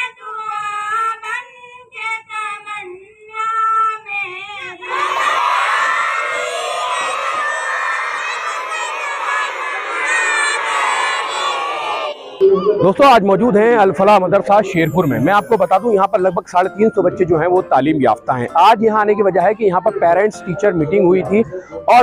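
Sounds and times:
children chanting in unison: 4.8s - 12.4s.

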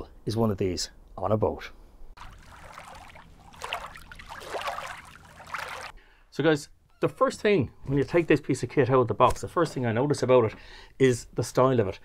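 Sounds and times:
water lapping and splashing: 2.2s - 6.0s.

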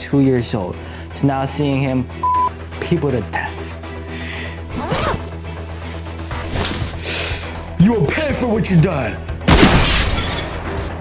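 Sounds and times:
background music: 0.0s - 11.0s
zipper pulled down: 4.7s - 5.4s.

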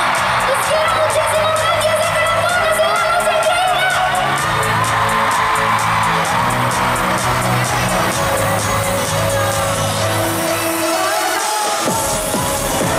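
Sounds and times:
crowd cheering: 0.0s - 12.9s
loud live pop music: 0.0s - 12.9s.

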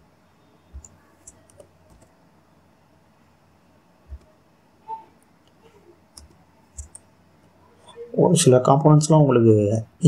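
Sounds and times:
computer mouse clicks: 0.7s - 2.1s, 5.4s - 7.1s.

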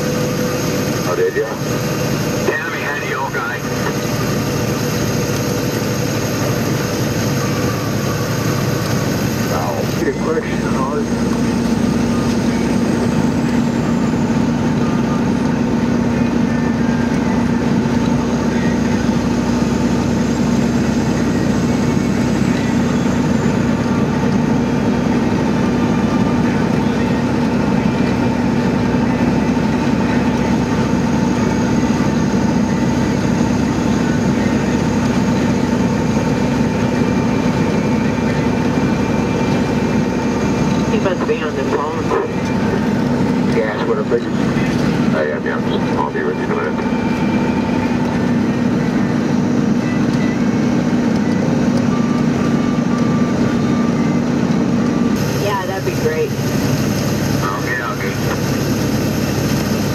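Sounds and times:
constant low hum: 0.0s - 59.9s
engine and road drone: 0.0s - 59.9s.

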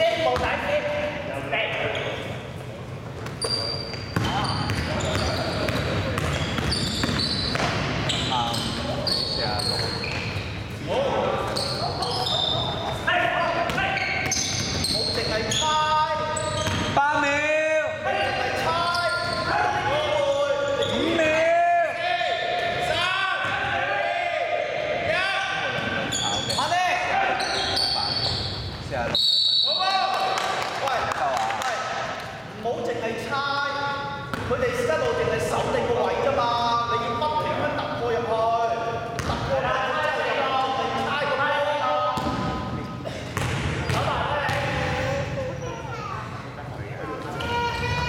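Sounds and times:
basketball bouncing on wooden court: 4.1s - 8.0s, 39.2s - 39.4s, 43.4s - 44.8s.

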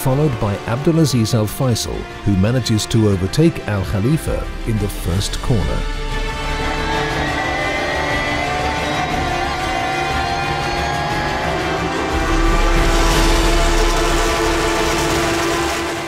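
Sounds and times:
race car engine accelerating: 6.5s - 16.0s.

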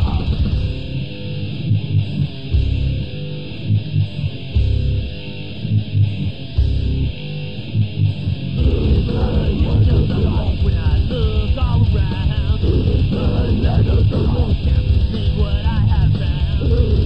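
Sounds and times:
heavy low hits: 0.0s - 3.1s, 8.6s - 17.0s
electric guitar: 0.0s - 17.0s.

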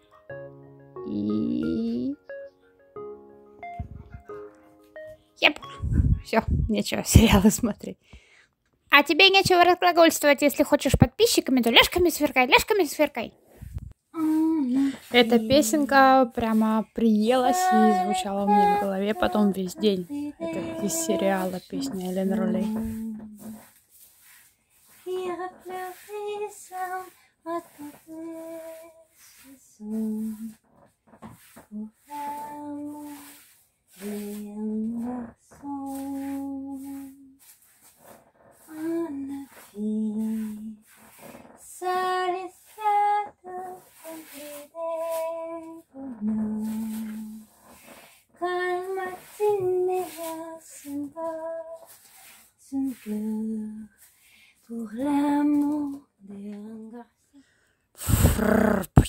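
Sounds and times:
woman singing unaccompanied: 1.0s - 2.2s, 14.1s - 23.7s, 25.0s - 30.6s, 31.6s - 37.4s, 38.6s - 40.9s, 41.6s - 47.5s, 48.4s - 52.0s, 52.6s - 54.0s, 54.7s - 57.2s.

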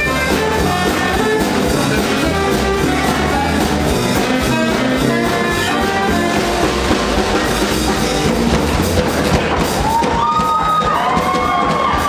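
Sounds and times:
sliding high notes: 0.0s - 10.9s
swing jazz band playing: 0.0s - 12.0s.

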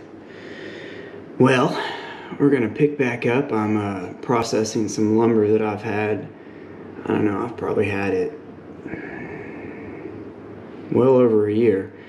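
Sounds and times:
faint high hum: 0.0s - 12.0s
low background noise: 0.0s - 12.0s.

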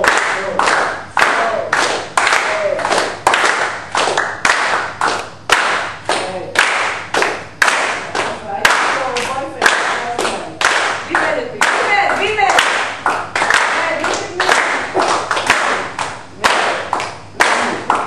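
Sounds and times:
group clapping hands rhythmically: 0.0s - 18.0s.

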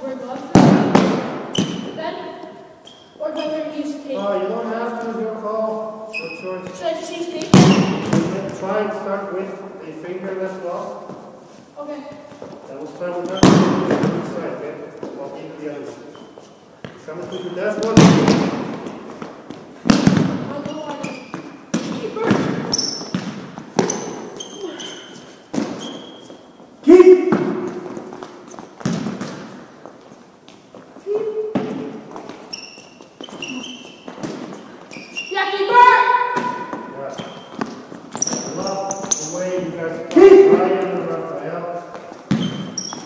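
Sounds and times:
balls thumping in a gym: 0.0s - 5.4s, 6.1s - 35.4s, 36.1s - 43.0s.

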